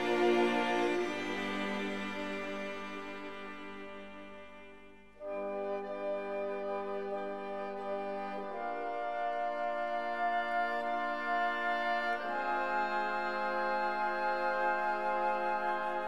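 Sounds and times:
slow sustained music chords: 0:00.0 - 0:16.0.

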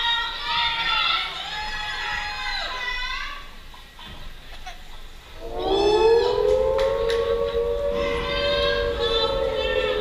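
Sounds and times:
siren-like tone: 0:05.4 - 0:10.0.

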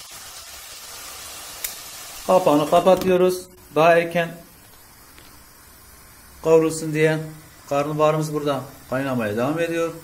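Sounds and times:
food sizzling in a pot: 0:00.0 - 0:10.0.

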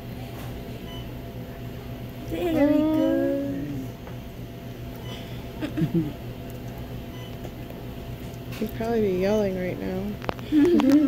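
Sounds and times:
medical equipment hum: 0:00.0 - 0:11.0.

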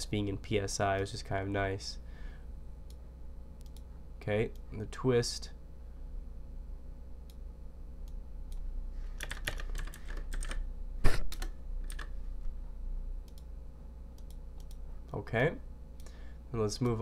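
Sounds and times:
keyboard typing: 0:09.2 - 0:10.6, 0:11.3 - 0:12.1.

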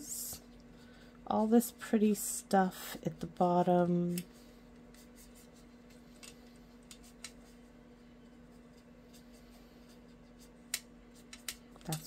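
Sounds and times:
woman's voice: 0:00.0 - 0:00.4, 0:01.3 - 0:04.3.

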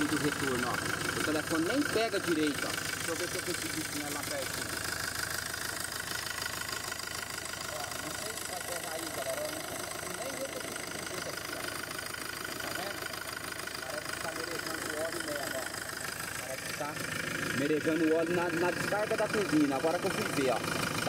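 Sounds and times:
turbocharged engine idling: 0:00.0 - 0:21.0.

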